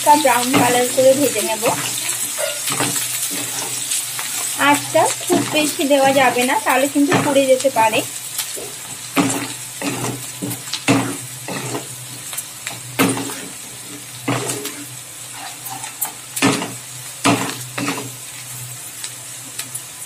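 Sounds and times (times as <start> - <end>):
onion sizzling in hot oil: 0.0 - 20.0
spatula scraping and tapping pan: 0.4 - 7.4, 8.4 - 18.2.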